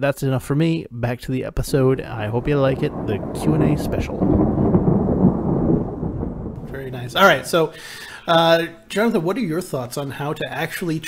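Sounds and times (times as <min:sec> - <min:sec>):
loud low rumbling: 0:02.0 - 0:07.6.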